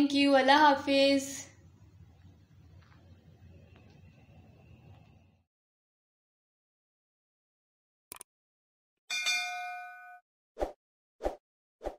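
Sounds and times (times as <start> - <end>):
bright bell ding: 9.1 - 10.2.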